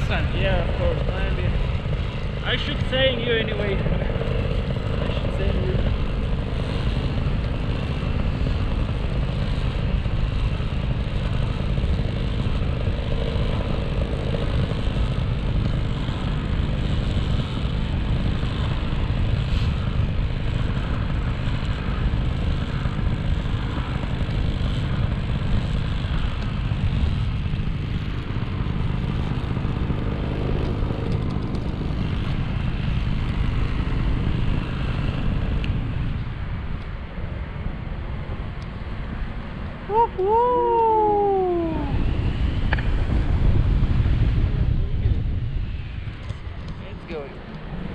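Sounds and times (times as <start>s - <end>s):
paramotor engine droning: 0.0s - 47.9s.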